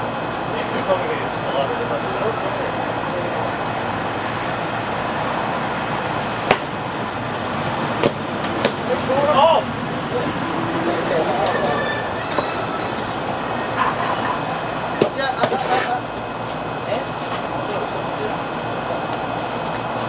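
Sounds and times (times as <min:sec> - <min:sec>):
steady outdoor hiss: 0:00.0 - 0:20.0
faint voices calling out: 0:08.8 - 0:19.4.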